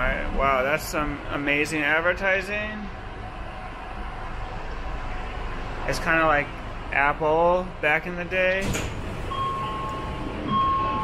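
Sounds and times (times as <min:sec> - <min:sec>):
train carriage rumble: 0:00.0 - 0:11.0
electronic warning beeps: 0:09.3 - 0:11.0.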